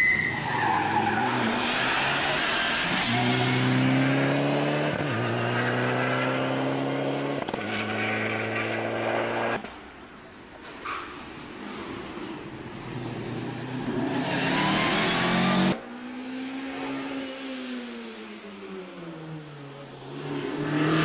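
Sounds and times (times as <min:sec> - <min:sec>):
tyre squeal: 0:00.0 - 0:03.6, 0:14.1 - 0:15.8
rally car engine accelerating: 0:01.7 - 0:09.6.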